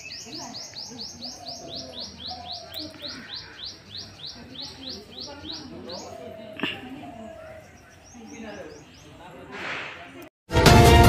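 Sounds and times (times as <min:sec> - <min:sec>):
bird chirping: 0:00.0 - 0:09.7.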